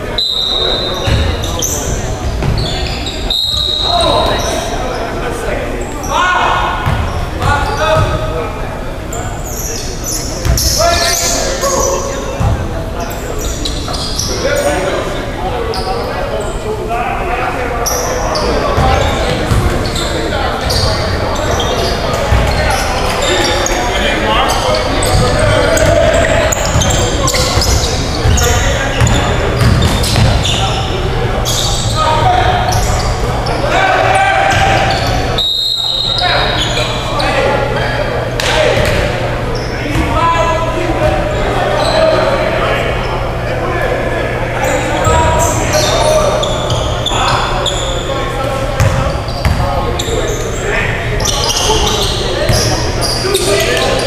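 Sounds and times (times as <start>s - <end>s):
players calling out: 0.0s - 54.0s.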